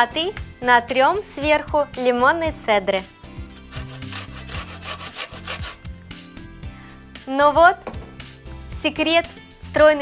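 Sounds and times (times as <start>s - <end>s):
lemon scraping on metal grater: 3.6s - 5.8s.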